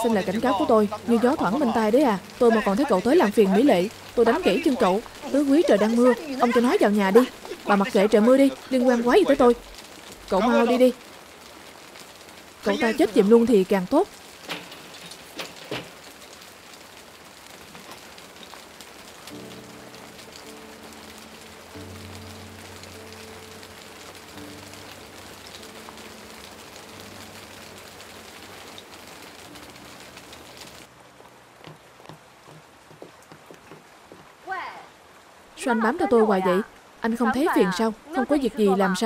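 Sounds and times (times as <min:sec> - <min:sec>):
soft background music: 0:00.0 - 0:11.0, 0:18.6 - 0:31.5
rain falling on ground: 0:00.0 - 0:39.0.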